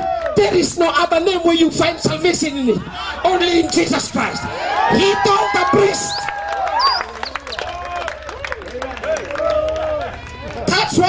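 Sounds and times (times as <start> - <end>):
man preaching into a microphone: 0.4 - 6.3, 10.7 - 11.0.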